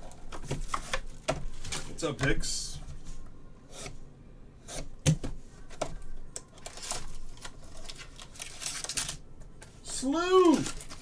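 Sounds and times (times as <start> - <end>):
cardboard and foil rustling: 0.0 - 3.2, 5.6 - 11.0.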